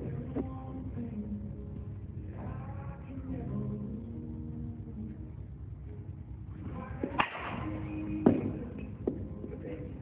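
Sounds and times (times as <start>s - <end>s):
baseball bat crack: 7.1s - 7.6s.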